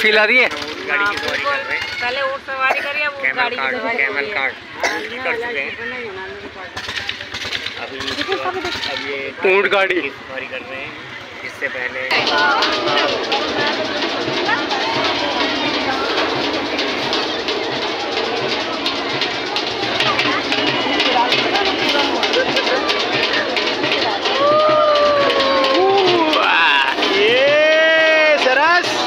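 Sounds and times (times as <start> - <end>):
music with drum beat: 0.0 - 29.0
riders chattering and calling out: 0.0 - 29.0.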